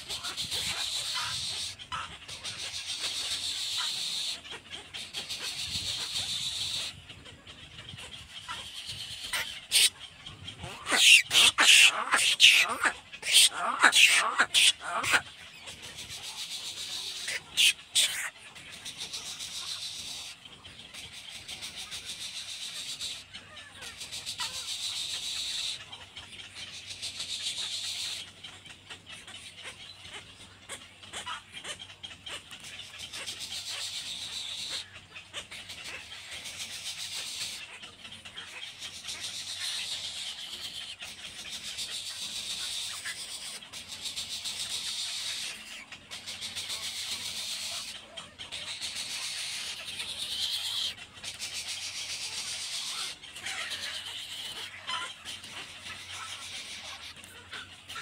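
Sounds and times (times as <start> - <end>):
nestlings high rapid chatter: 0.0 - 58.0.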